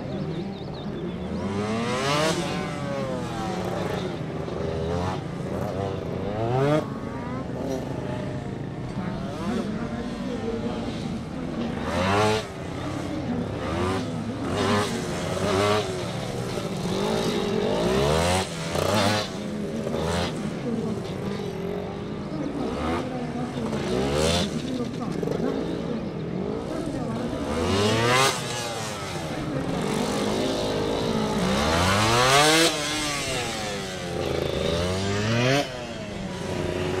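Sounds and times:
motorcycle engine revving: 0.0s - 37.0s.

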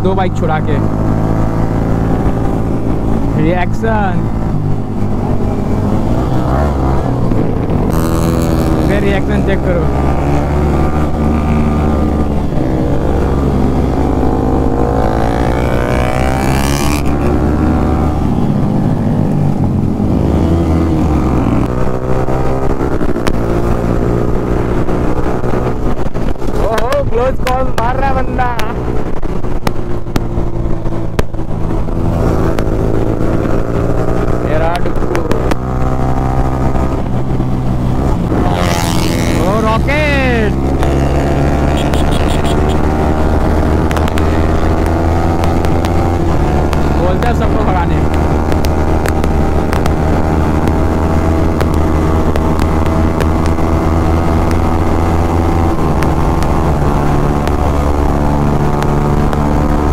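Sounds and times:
motorcycle engine running: 0.0s - 59.9s.

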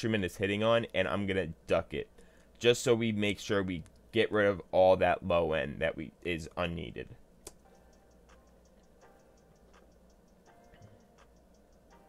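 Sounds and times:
faint beat ticks: 7.4s - 12.0s.

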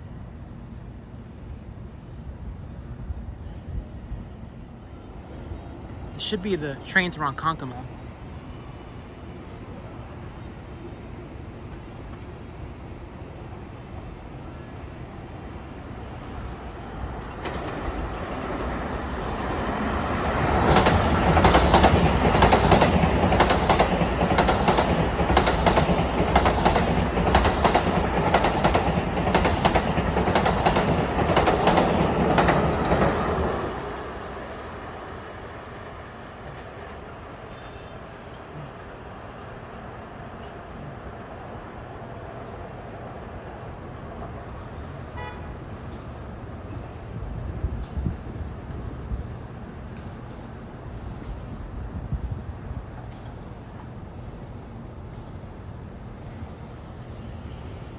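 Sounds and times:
electric train passing: 0.0s - 57.9s
train wheels clicking over rail joints: 20.4s - 33.4s.

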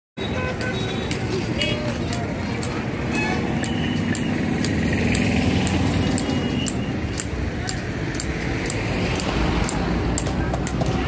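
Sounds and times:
people's voices: 0.2s - 11.0s
sharp clicks: 0.5s - 11.0s.

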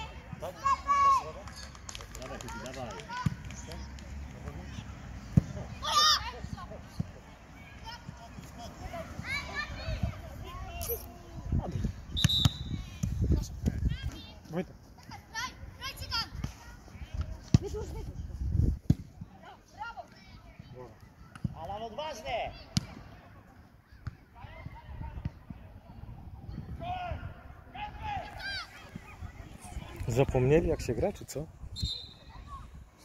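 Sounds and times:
distant shouts and calls: 4.6s - 10.6s
wind rumble on microphone: 17.7s - 18.9s.

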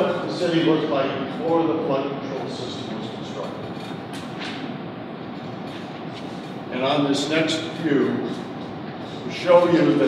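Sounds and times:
rumbling room noise: 0.0s - 10.0s.

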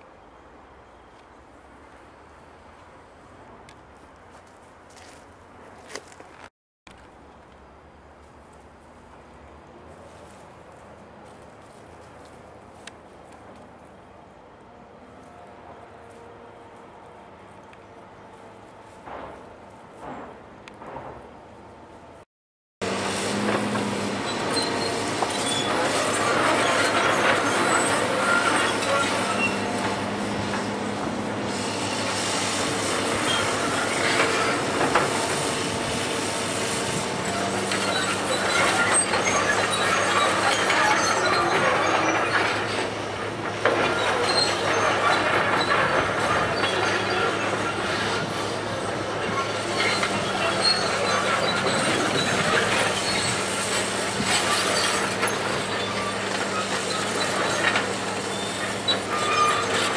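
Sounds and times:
excavator diesel engine: 22.8s - 59.9s
faint short high squeaks: 24.2s - 30.0s, 33.2s - 34.6s, 37.2s - 42.9s, 43.6s - 59.9s.

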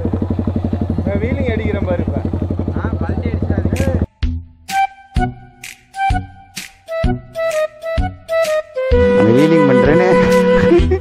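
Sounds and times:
motorcycle engine idling: 0.0s - 4.1s.

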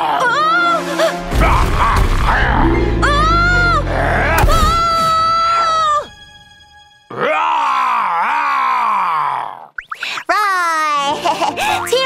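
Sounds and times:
wavering vocal groan: 2.2s - 4.5s, 7.1s - 9.7s
children's cartoon music: 2.3s - 7.1s, 9.8s - 12.0s.

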